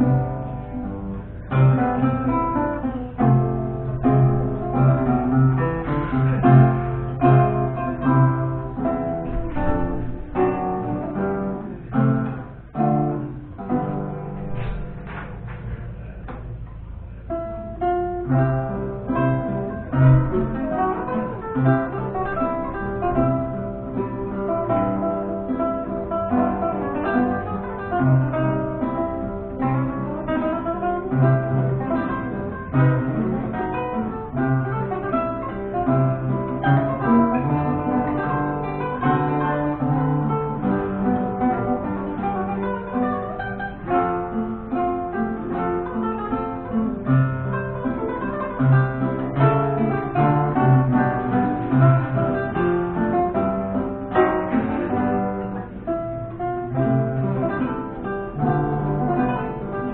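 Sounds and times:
guitar duet plucked notes: 0.0 - 59.9.

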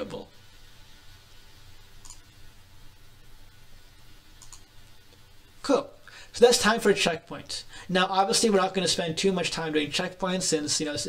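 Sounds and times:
steady low hum: 0.0 - 11.0
computer click: 4.4 - 4.7.

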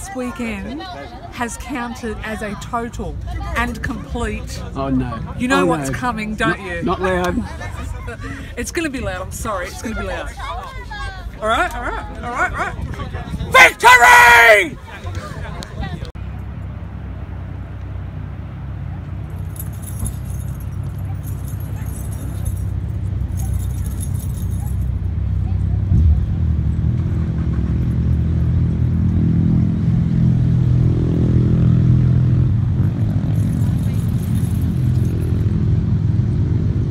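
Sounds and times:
motorcycle engines rumbling: 0.0 - 36.9.

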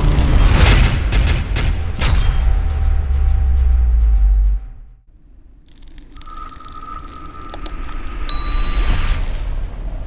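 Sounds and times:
mouse clicks: 7.5 - 7.8
bell-like ding: 8.3 - 9.3.

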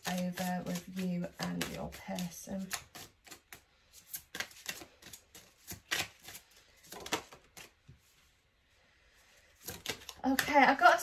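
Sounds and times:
cards being shuffled: 0.0 - 8.2, 9.4 - 10.5.

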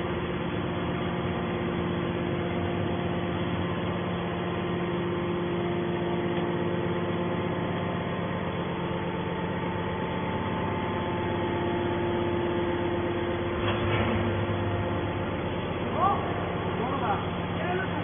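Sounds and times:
hydraulic power unit humming: 0.0 - 18.0.

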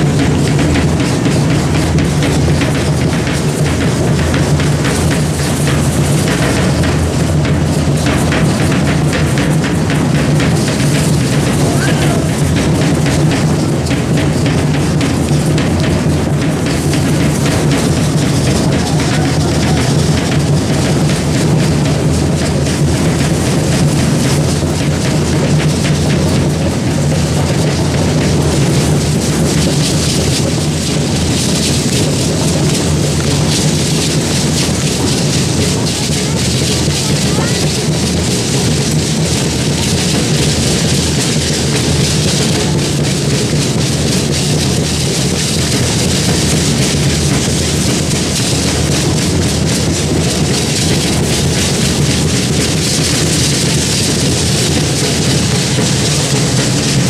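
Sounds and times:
crowd voices: 0.0 - 57.0
dense rattling of rattles: 0.0 - 57.0
drum beat: 0.0 - 57.0.

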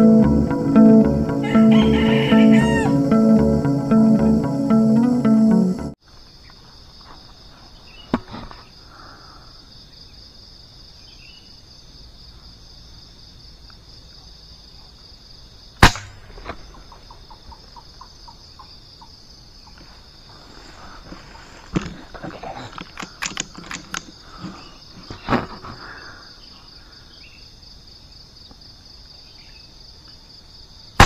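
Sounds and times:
burst of music: 0.0 - 6.0
insects droning: 0.0 - 31.0
gunshot crack: 15.8 - 16.7.

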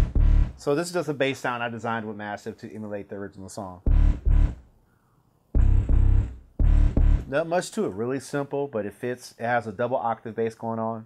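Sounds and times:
heavy synth bass notes: 0.0 - 0.6, 3.9 - 4.6, 5.6 - 7.3.

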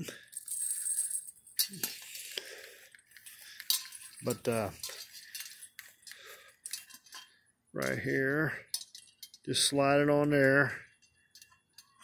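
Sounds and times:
metal handle clinking and rattling: 3.6 - 8.0, 8.7 - 9.5.

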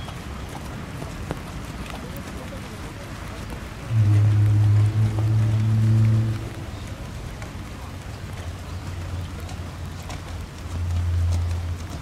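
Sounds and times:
rain hissing: 3.2 - 11.8
loud low hum: 3.9 - 7.3.

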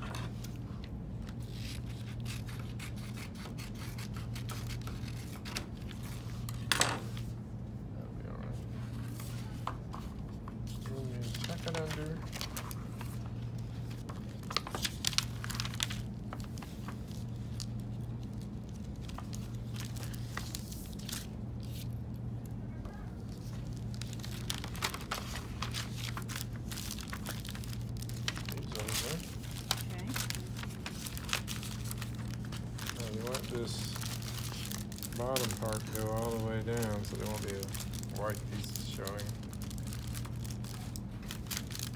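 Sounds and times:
paper rustling and crinkling: 8.7 - 41.9.

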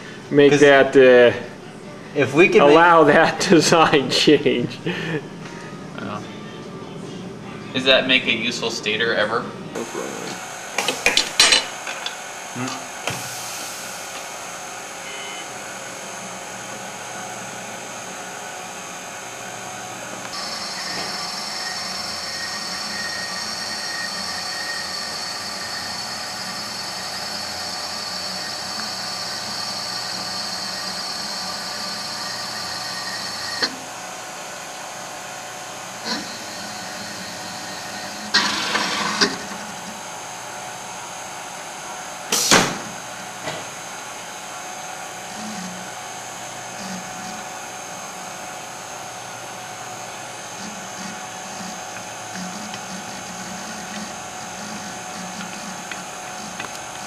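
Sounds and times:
high motor whine: 9.6 - 57.0
winding machine humming: 14.2 - 40.4, 45.2 - 57.0.

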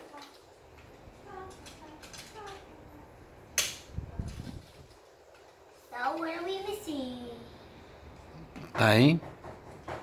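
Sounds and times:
plastic toy parts clicking: 1.5 - 2.6.

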